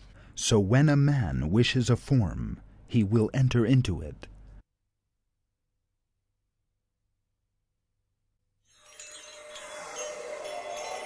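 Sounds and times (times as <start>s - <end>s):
chime-like musical sting: 8.8s - 11.0s.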